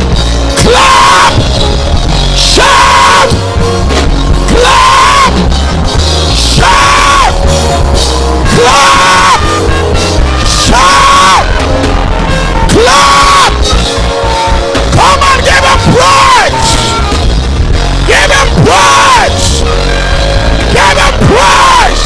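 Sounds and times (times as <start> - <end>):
loud live band music: 0.0 - 22.0
person yelling high: 0.6 - 1.4, 2.4 - 3.4, 4.5 - 5.3, 6.5 - 7.4, 8.4 - 11.6, 12.2 - 13.6, 14.2 - 17.2, 18.1 - 19.5, 20.7 - 22.0.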